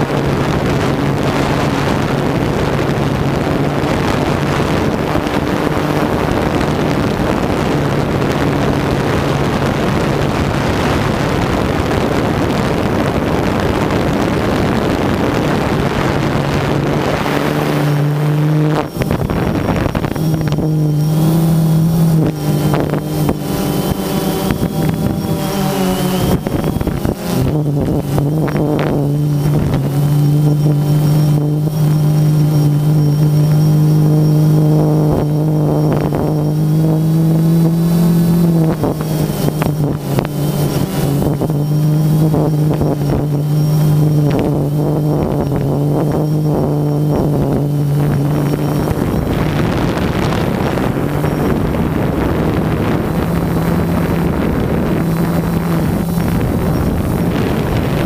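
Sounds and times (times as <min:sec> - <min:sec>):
drone propellers humming: 0:00.0 - 0:58.0
wind noise: 0:00.0 - 0:58.0.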